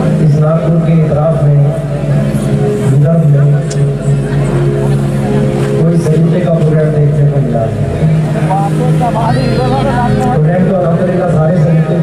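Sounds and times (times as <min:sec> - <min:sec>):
man speaking through sound system: 0:00.0 - 0:02.1, 0:02.9 - 0:04.1, 0:05.8 - 0:12.0
steady low drone: 0:00.0 - 0:12.0.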